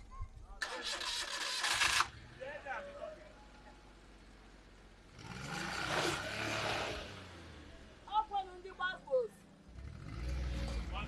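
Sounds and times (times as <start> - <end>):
van engine revving: 4.1 - 8.1, 9.6 - 11.0
tyres scraping on dirt: 5.2 - 7.3.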